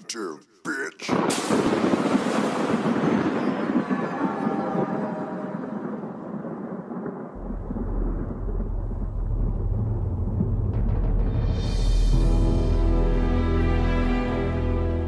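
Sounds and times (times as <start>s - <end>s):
thunderclap with rolling rumble: 1.1s - 12.1s.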